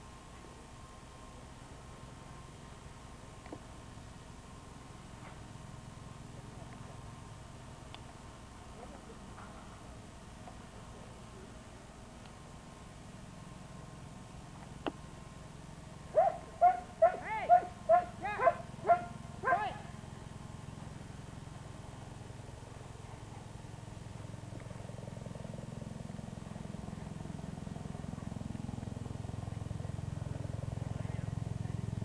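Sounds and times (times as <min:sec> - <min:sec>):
dog barking: 0:16.1 - 0:19.9.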